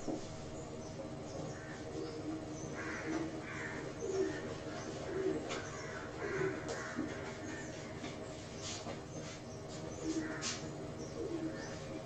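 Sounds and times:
cloth wiping a whiteboard: 0:08.4 - 0:10.6.

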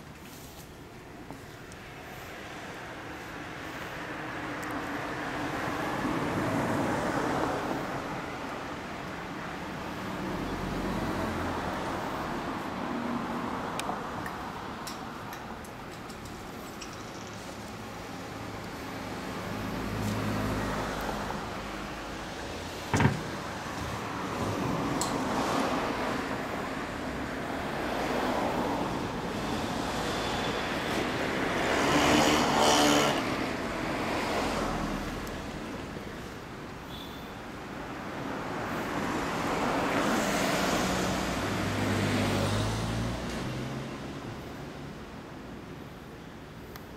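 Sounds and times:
motor vehicles passing: 0:01.3 - 0:36.6, 0:37.7 - 0:45.1.

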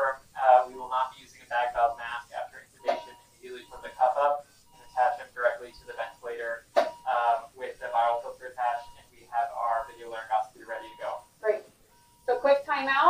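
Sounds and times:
people talking: 0:00.0 - 0:11.7, 0:12.3 - 0:13.0
faint steady tone: 0:00.0 - 0:13.0.

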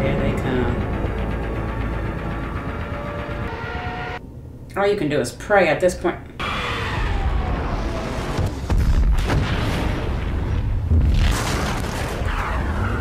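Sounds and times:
heavy low rumble: 0:00.0 - 0:03.5
falling bomb whine: 0:06.4 - 0:13.0
bomb explosions booming: 0:06.7 - 0:13.0.

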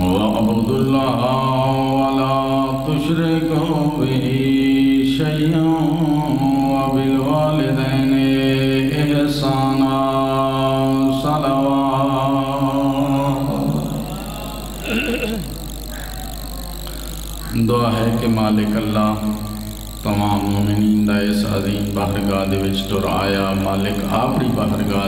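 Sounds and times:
man chanting through microphone: 0:00.0 - 0:25.0.

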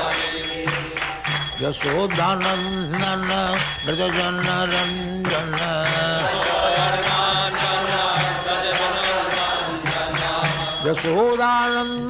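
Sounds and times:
hand cymbals striking a beat: 0:00.0 - 0:12.0.

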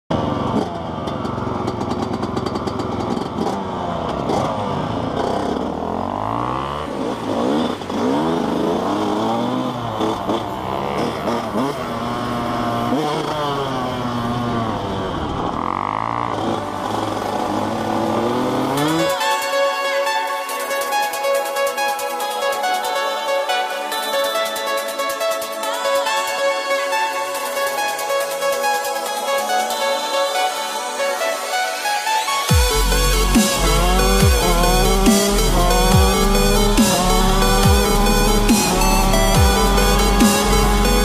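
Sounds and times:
dirt bike engines revving: 0:00.1 - 0:22.6, 0:23.9 - 0:41.0
music: 0:16.6 - 0:41.0.

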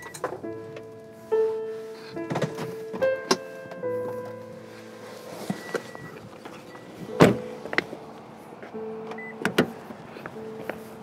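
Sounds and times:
car door knocks: 0:07.1 - 0:07.8
car door thud: 0:07.1 - 0:07.8.

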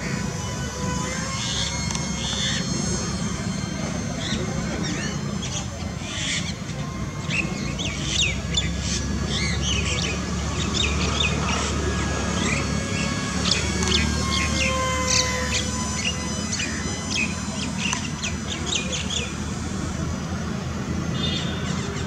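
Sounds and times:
faint thin whine: 0:00.0 - 0:09.2, 0:09.9 - 0:21.7
songbirds chirping: 0:00.0 - 0:22.0.

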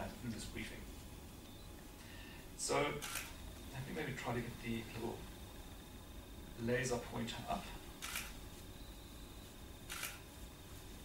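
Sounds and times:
faint high whine: 0:00.0 - 0:11.0
soft hiss: 0:00.0 - 0:11.0.

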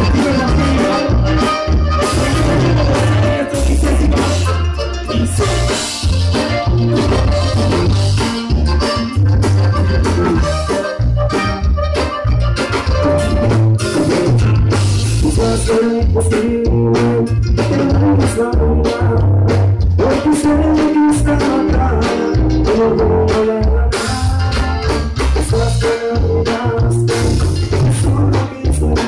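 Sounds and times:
live latin dance band: 0:00.0 - 0:29.0.

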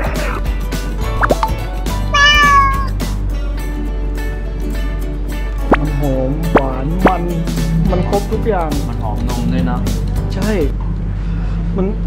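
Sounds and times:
background music: 0:00.0 - 0:10.7
cat meow: 0:02.1 - 0:03.0.

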